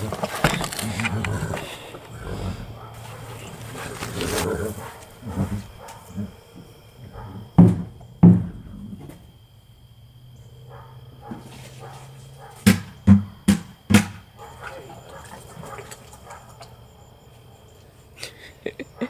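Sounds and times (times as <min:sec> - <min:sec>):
horse feed clattering and scraping: 0:00.0 - 0:06.1
loud sharp knocks: 0:07.3 - 0:08.6, 0:12.6 - 0:14.3.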